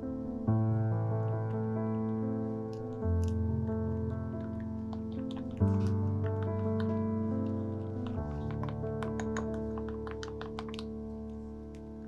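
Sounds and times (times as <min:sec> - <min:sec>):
background music: 0:00.0 - 0:12.0
wooden spoon clicking on glass bowl: 0:08.0 - 0:10.9.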